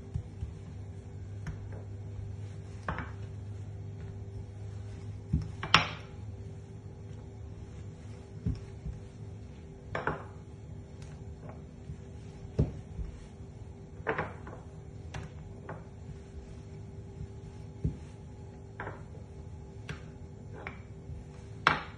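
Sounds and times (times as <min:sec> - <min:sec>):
low steady hum: 0:00.0 - 0:21.9
wooden rolling pin rolling dough: 0:00.0 - 0:21.9.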